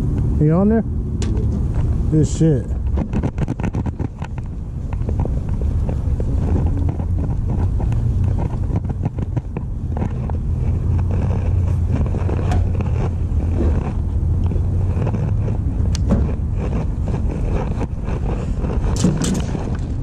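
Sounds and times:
low rumble: 0.0s - 20.0s.

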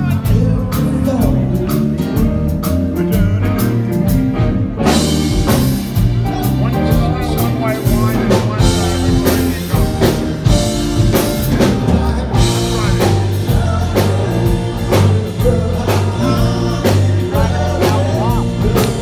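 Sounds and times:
bass: 0.0s - 19.0s
drum kit: 0.0s - 19.0s
electric guitars: 0.0s - 19.0s
organ and keyboards: 0.0s - 19.0s.

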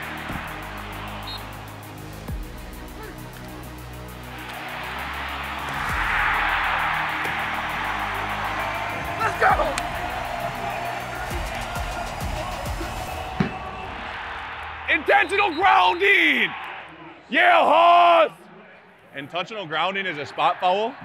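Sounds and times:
background music with a beat: 0.0s - 14.6s
stadium crowd cheering: 0.0s - 21.0s.

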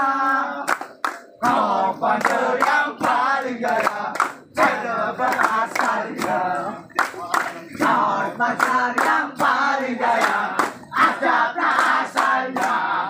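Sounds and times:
hands clapping in rhythm: 0.0s - 13.0s
men singing together: 0.0s - 13.0s.

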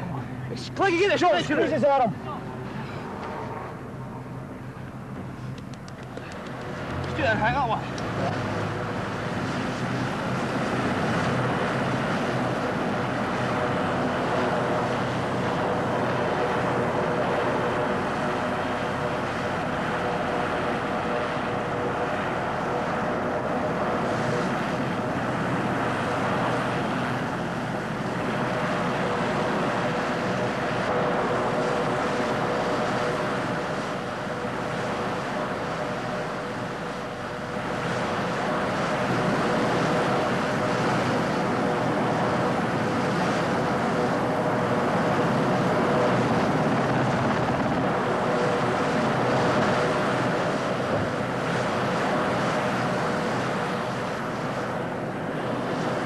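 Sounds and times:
helicopter engines and rotors: 0.0s - 56.0s.

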